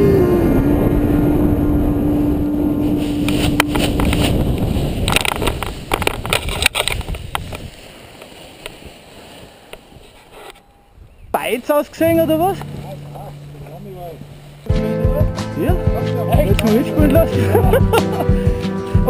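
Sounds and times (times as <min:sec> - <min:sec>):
wind rushing over microphone: 0:00.0 - 0:18.6.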